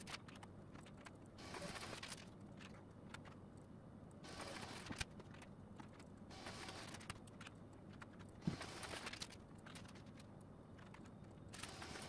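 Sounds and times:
papers rustling: 0.0 - 3.4, 4.3 - 12.0.

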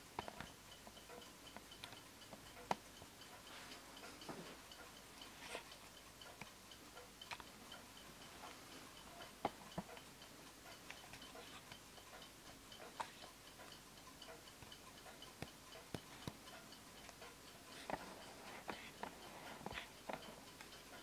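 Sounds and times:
wall clock ticking: 0.0 - 21.0.

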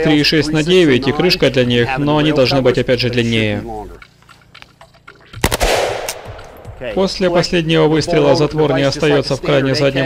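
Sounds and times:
rifle shots ringing: 5.4 - 7.3.

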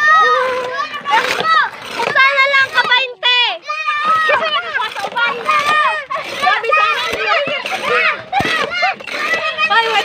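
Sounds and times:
children and women chattering: 0.0 - 10.0.

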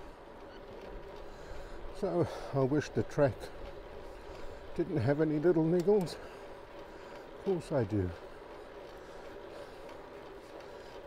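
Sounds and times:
bicycle tyre hum on tarmac: 0.0 - 11.0
drivetrain whirr: 0.0 - 11.0.

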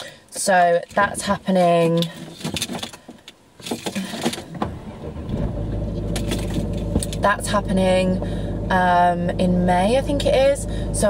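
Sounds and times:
car keys jangling in ignition: 1.7 - 4.5, 6.0 - 7.4
car engine starting and idling: 4.0 - 11.0.

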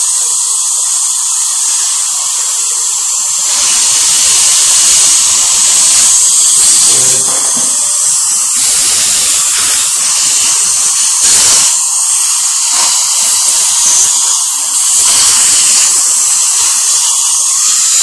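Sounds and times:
dental drill and suction hiss: 0.0 - 18.0.

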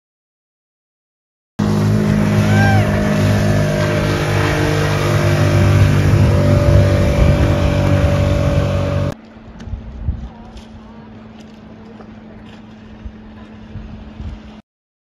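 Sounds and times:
rushing water: 1.6 - 9.2
outboard motors running: 1.6 - 14.6
wind: 1.6 - 14.6.

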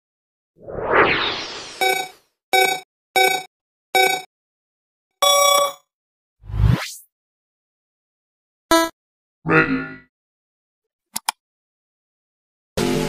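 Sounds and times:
electronic whoosh: 0.6 - 2.0
longer beep tone: 1.8 - 4.3, 5.2 - 5.8, 8.7 - 8.9
short pitched beeps: 1.8 - 4.3, 5.2 - 5.8, 8.7 - 8.9.

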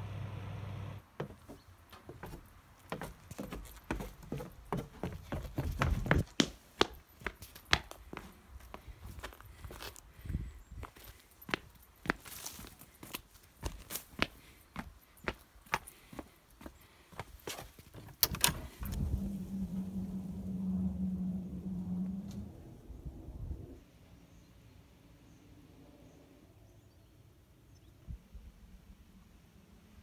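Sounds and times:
footsteps on paving: 1.2 - 18.2
steady low hum: 18.4 - 23.8.

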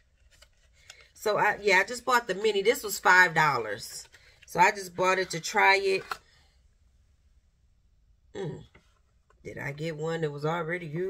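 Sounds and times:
person speaking: 1.1 - 6.2, 8.4 - 8.8, 9.4 - 11.0.

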